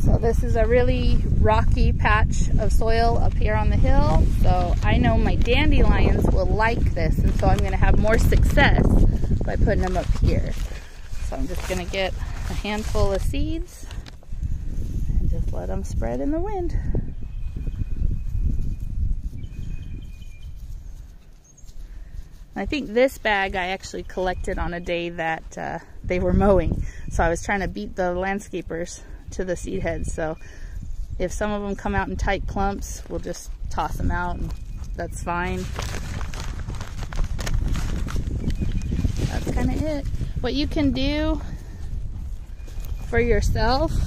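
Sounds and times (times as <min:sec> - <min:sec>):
wind buffeting microphone: 0:00.0 - 0:44.0
footsteps crunching on dry leaves: 0:07.2 - 0:14.2, 0:35.6 - 0:40.4.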